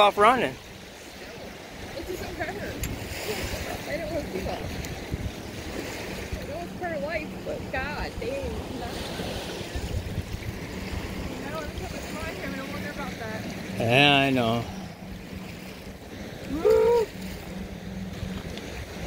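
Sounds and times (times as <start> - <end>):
surf washing on beach: 0.0 - 19.0
wind rumbling on microphone: 1.4 - 19.0.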